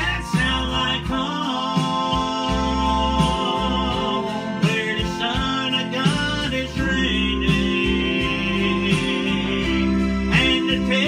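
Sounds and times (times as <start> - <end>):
bass: 0.0 - 11.0
guitar: 0.0 - 11.0
man singing: 0.0 - 11.0.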